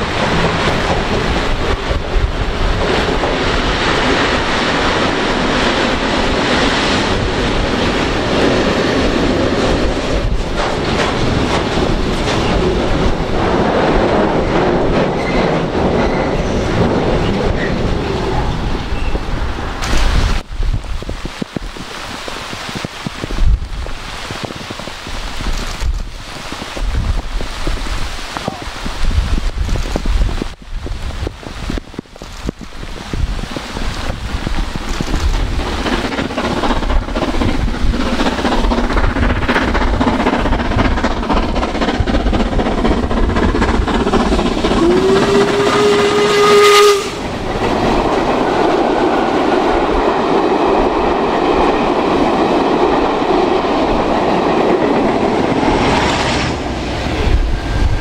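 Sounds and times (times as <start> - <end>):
steam locomotive working hard: 0.0 - 20.5, 23.8 - 58.0
train passing close by: 0.0 - 21.2, 23.3 - 58.0
wind buffeting microphone: 0.0 - 58.0
steam whistle: 44.7 - 47.3.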